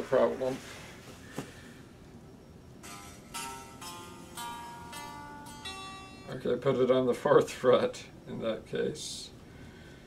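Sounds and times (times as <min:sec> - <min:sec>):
unplugged electric guitar strummed: 0:02.8 - 0:06.9.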